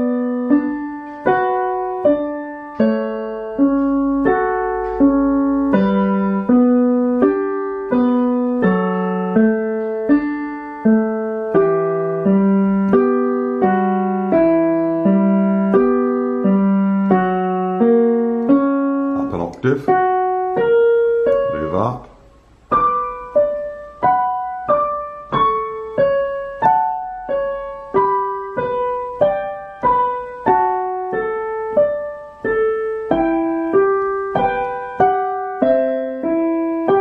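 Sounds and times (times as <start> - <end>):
slow digital piano: 0.0 - 37.0.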